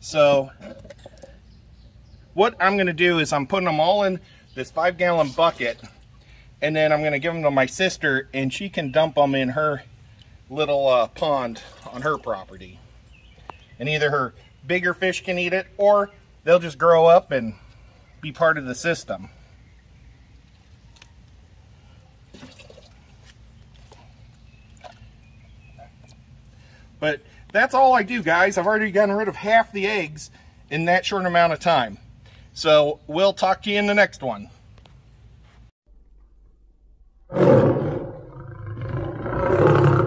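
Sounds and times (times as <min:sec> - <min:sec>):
water drips and splashes: 0:11.2 - 0:12.6, 0:22.2 - 0:25.3
animal roaring: 0:37.3 - 0:40.0.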